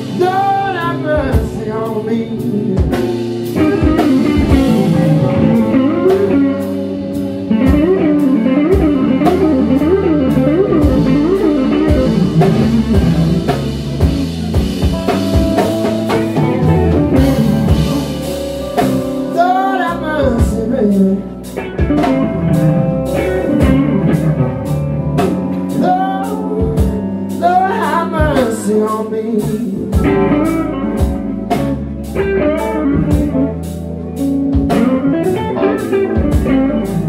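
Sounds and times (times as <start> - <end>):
bass: 0.0 - 37.0
drums: 0.0 - 37.0
electric guitar lead: 0.0 - 37.0.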